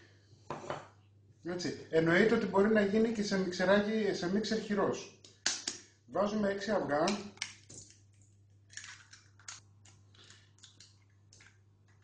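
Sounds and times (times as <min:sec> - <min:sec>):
eggshells cracking: 0:07.4 - 0:12.0.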